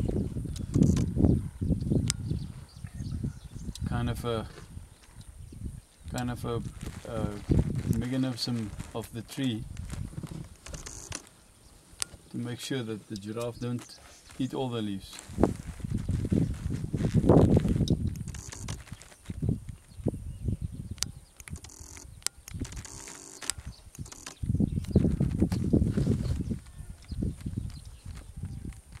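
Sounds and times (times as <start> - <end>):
wind buffeting microphone: 0.0 - 12.3, 15.2 - 29.0.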